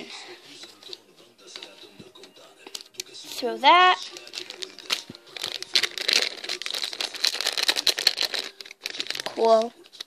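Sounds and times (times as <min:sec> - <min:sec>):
foil packet crinkling: 0:03.8 - 0:10.0
scissors cutting foil: 0:04.1 - 0:10.0.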